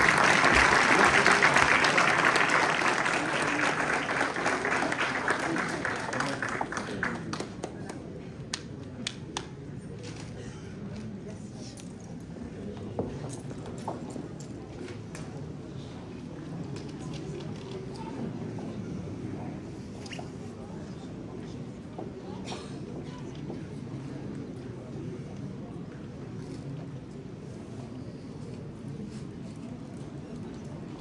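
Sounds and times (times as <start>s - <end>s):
murmur of people talking: 0.0s - 31.0s.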